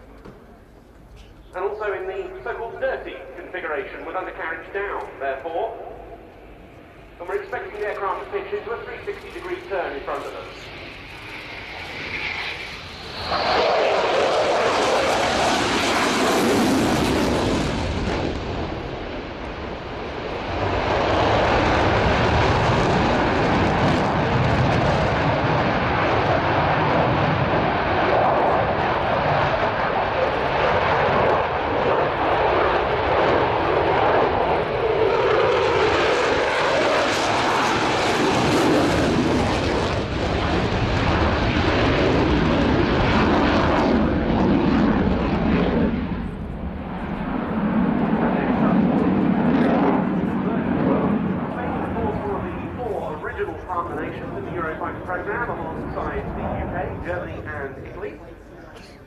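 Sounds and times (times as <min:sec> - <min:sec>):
jet engines with afterburners: 0:00.0 - 0:59.0.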